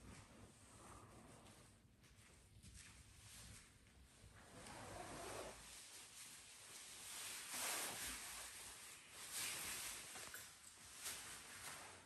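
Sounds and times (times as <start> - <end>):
clothing rustling: 0.0 - 12.0.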